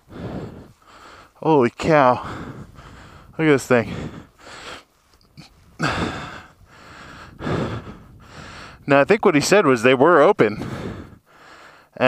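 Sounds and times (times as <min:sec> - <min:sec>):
man breathing close to microphone: 0:00.0 - 0:01.4, 0:02.1 - 0:08.9, 0:10.5 - 0:12.0.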